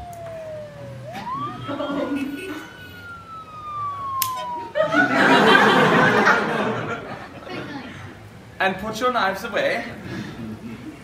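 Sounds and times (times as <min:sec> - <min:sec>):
person imitating police siren: 0:00.0 - 0:06.4.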